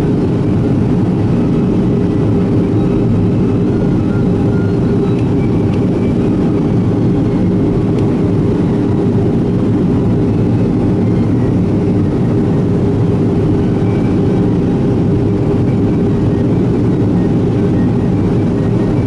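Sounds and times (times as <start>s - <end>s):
airplane cabin engine drone: 0.0s - 19.0s.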